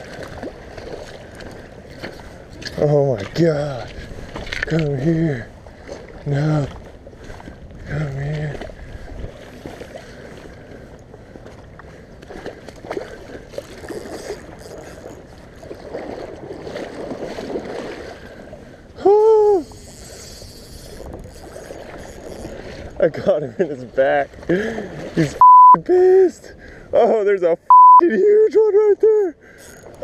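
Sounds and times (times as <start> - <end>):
river water: 0.0 - 30.0
fishing reel handling noise: 1.8 - 2.8, 13.6 - 15.8, 19.6 - 22.6, 29.6 - 30.0.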